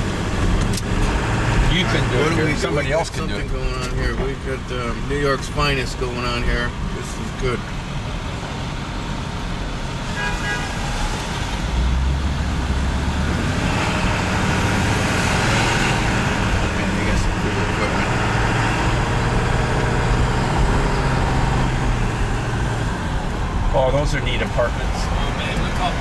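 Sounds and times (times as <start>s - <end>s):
vehicle engine and road noise: 0.0s - 26.0s
horn toot: 10.1s - 11.3s.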